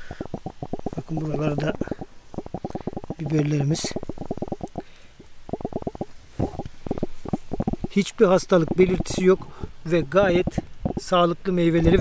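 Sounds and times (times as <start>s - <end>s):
microphone handling noise: 0.0s - 11.1s.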